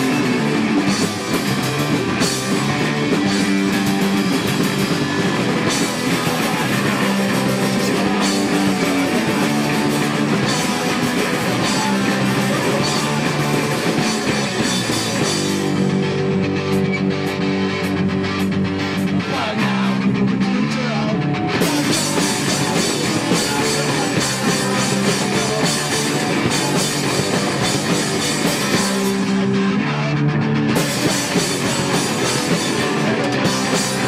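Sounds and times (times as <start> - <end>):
punk rock band playing live: 0.0 - 34.0.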